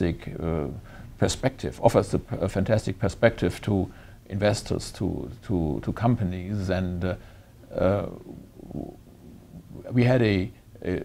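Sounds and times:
man speaking: 0.0 - 9.0, 9.6 - 11.0
faint low vocal sound: 7.7 - 10.0.

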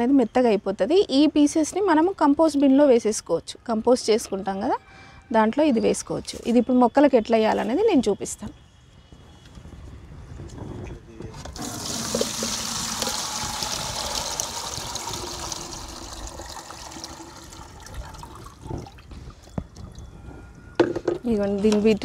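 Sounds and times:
liquid pouring into bucket: 11.5 - 20.0.

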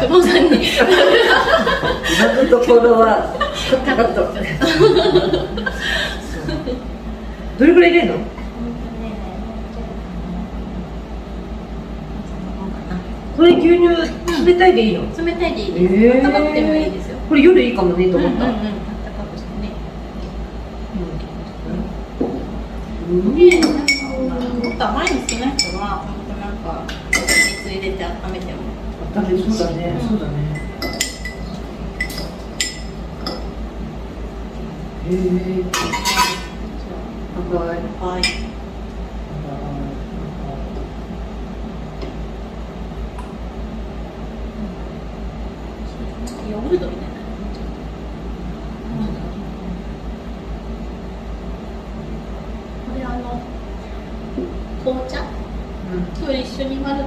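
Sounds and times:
room noise hum and hiss: 0.0 - 57.0
metal spoon clinking on glass: 27.1 - 27.7.

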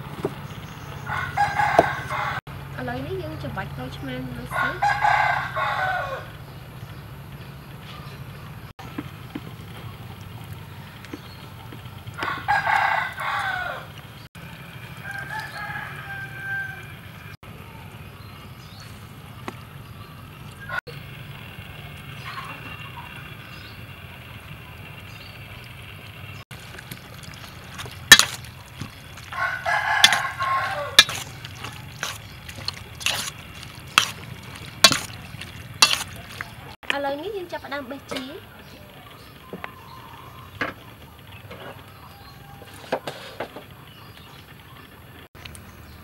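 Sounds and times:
rooster crowing: 1.0 - 2.4, 4.5 - 6.4, 12.2 - 14.0, 14.6 - 17.4, 29.2 - 31.3.

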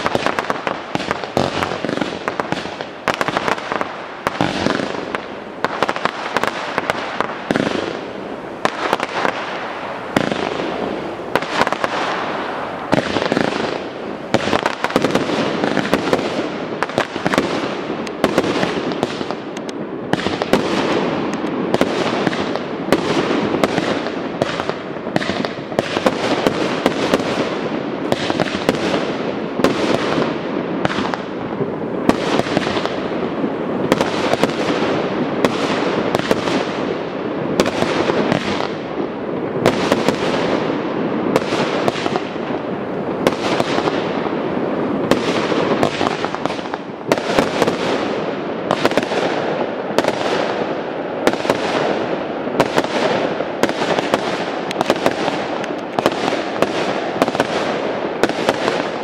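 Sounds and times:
fireworks bursting: 0.0 - 59.0.

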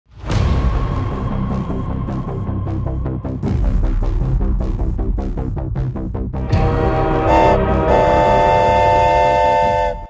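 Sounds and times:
train horn: 6.5 - 10.0.

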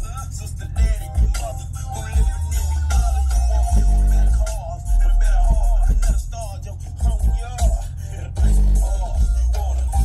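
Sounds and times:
loud music with deep bass: 0.0 - 10.0.

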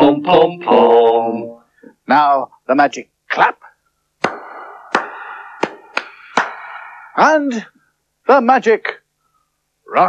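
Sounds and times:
man clapping hands: 4.2 - 6.8.

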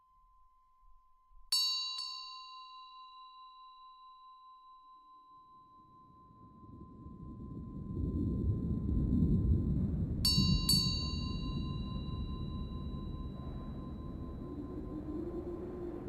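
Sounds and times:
bell-like chime: 0.0 - 8.1, 10.3 - 14.5
low noisy swell: 6.0 - 16.0.

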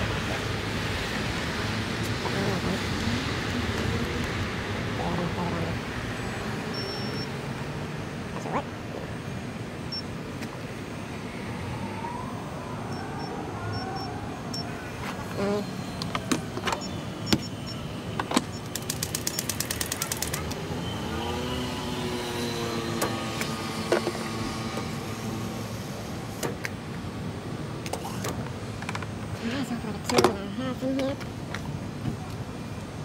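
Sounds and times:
street traffic: 0.0 - 33.0
vehicle engine speeding up: 18.7 - 26.3.

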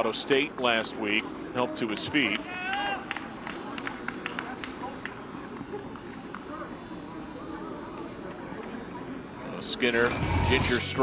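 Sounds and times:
faint distant voices: 0.0 - 11.0
steady background hum: 0.0 - 11.0.

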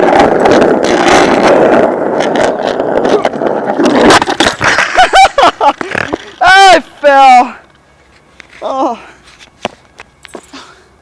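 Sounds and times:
skateboard wheels rolling on asphalt: 0.0 - 11.0
person crying out: 8.6 - 9.1.

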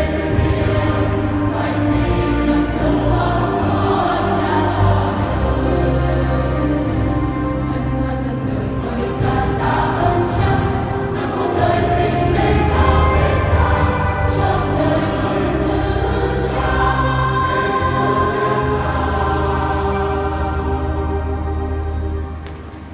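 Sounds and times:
choir singing a hymn: 0.0 - 22.5.

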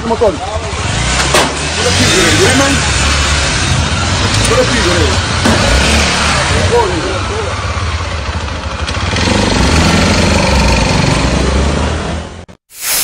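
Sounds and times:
motorcycle engines running: 0.0 - 12.4
whoosh effect: 12.7 - 13.0.

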